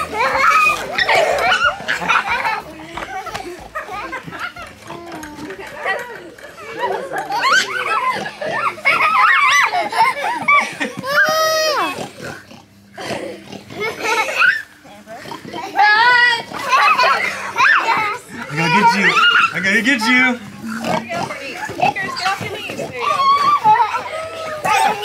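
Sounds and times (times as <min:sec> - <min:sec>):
children squealing and laughing: 0:00.0 - 0:25.0.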